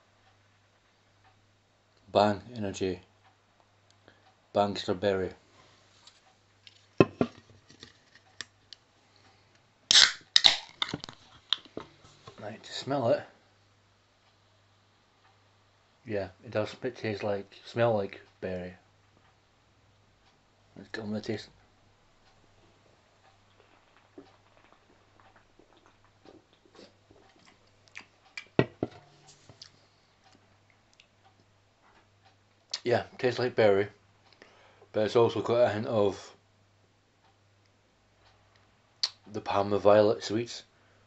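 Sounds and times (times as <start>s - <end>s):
can clicks and knocks: 7.0s - 7.4s, 28.6s - 29.1s
drink can cracked open: 9.9s - 11.7s
person sipping and swallowing: 23.5s - 28.6s.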